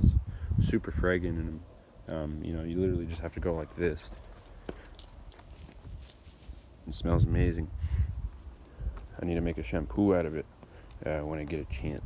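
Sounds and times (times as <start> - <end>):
rustling leaves: 3.0 - 11.0.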